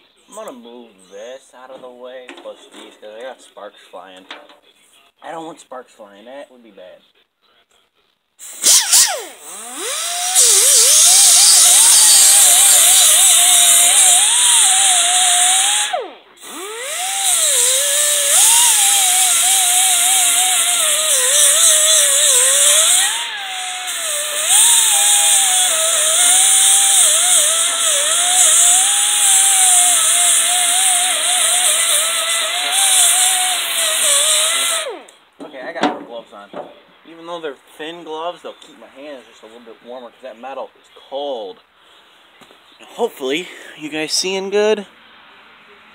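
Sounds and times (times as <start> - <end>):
pneumatic die grinder whine: 8.4 - 35.2.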